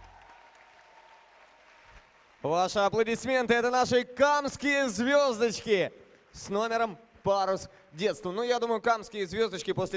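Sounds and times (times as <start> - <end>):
audience applause: 0.0 - 2.6.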